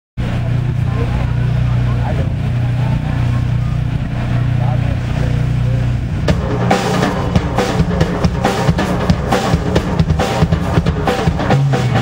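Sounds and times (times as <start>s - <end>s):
faint voices: 0.2s - 12.0s
sound system low hum: 0.2s - 12.0s.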